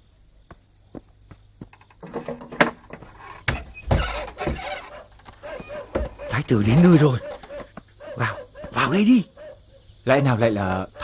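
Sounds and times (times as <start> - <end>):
heavy knocks of wooden gate: 2.0 - 6.5
short animal calls: 4.1 - 9.9.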